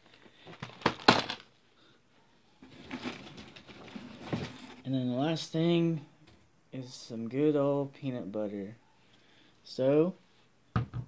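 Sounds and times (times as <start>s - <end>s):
packaged groceries rustling: 0.0s - 1.6s, 2.6s - 4.8s.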